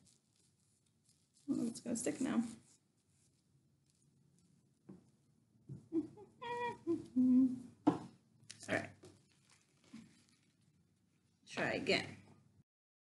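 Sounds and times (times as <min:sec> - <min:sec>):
woman humming: 0:05.8 - 0:07.7.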